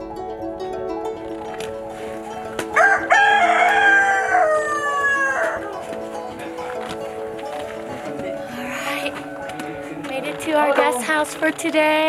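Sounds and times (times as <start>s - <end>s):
background music: 0.0s - 12.0s
rooster crowing: 2.7s - 5.8s.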